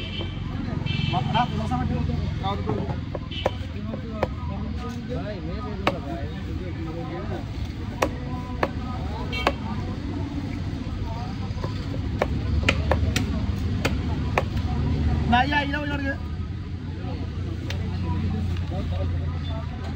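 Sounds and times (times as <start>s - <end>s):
cleaver chopping fish on wood: 3.0s - 4.4s, 5.7s - 6.1s, 7.9s - 9.7s, 11.6s - 14.6s.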